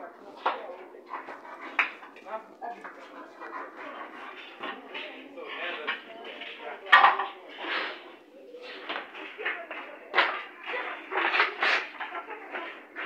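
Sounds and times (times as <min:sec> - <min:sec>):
indistinct voices talking: 0:00.0 - 0:13.0.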